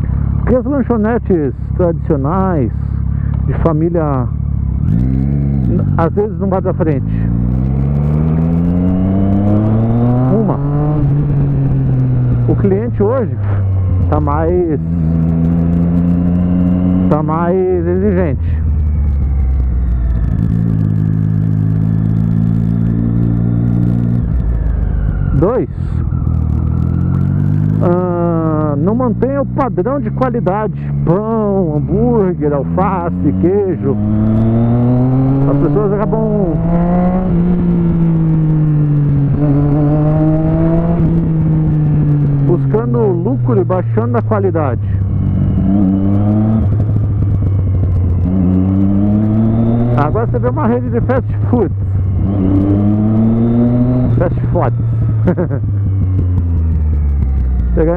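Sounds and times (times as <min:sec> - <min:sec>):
motorcycle engine cruising: 0:00.0 - 0:57.9
wind rumble: 0:00.0 - 0:57.9.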